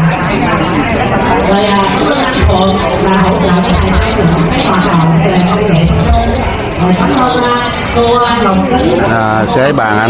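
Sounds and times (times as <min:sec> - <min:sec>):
voice over loudspeakers: 0:00.0 - 0:10.0.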